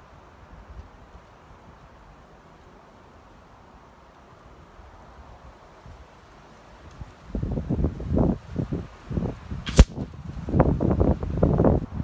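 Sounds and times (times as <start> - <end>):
wind buffeting microphone: 6.8 - 12.0
air rifle shot: 9.7 - 10.0.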